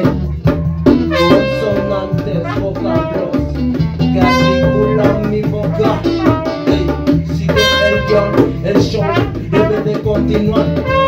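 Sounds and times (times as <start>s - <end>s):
bass and drums: 0.0s - 11.0s
horn-like lead melody: 1.0s - 11.0s.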